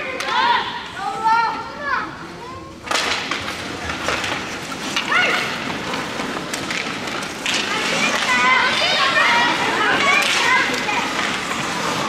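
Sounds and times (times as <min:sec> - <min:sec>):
sticks and puck clacking: 0:00.0 - 0:00.8, 0:02.8 - 0:12.0
skate blades scraping ice: 0:02.9 - 0:12.0.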